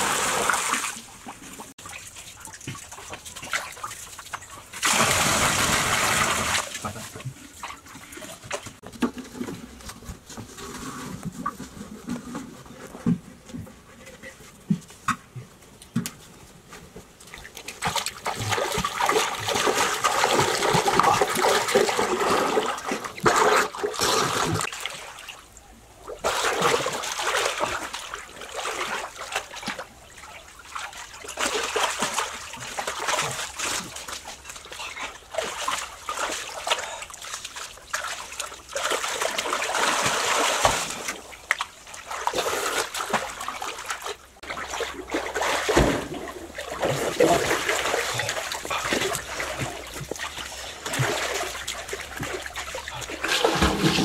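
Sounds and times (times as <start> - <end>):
water splashing and sloshing: 0.0 - 54.0.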